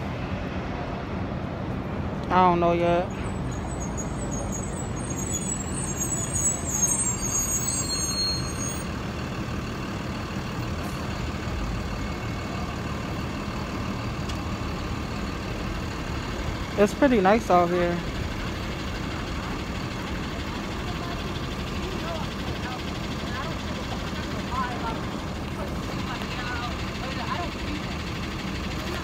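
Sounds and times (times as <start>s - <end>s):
city street traffic: 0.0s - 29.0s.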